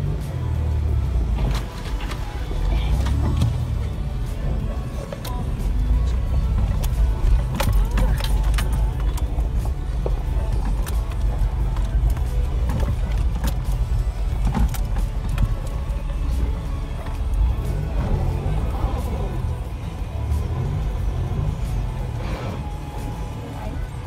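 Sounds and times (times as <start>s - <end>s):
engine and tyres rumbling: 0.0s - 24.0s
car body rattling and knocking: 6.5s - 16.3s.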